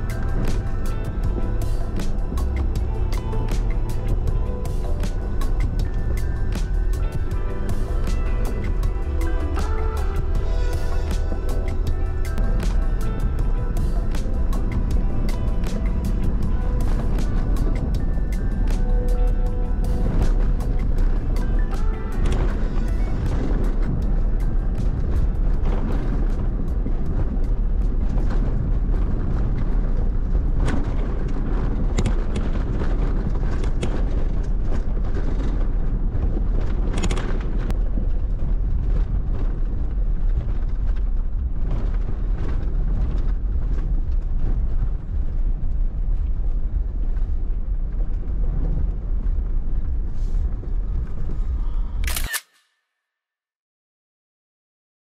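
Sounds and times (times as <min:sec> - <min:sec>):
wind and tyres rumbling: 0:00.0 - 0:52.4
camera shutter click: 0:52.0 - 0:52.7.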